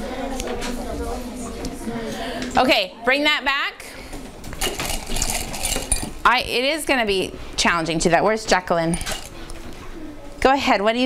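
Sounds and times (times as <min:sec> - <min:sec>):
small clinks and rattles on desks: 0:04.4 - 0:06.3, 0:08.8 - 0:09.5.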